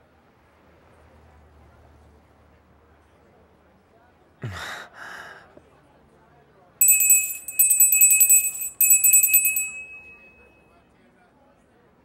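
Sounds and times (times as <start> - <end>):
small bell ringing rapidly: 6.8 - 10.6.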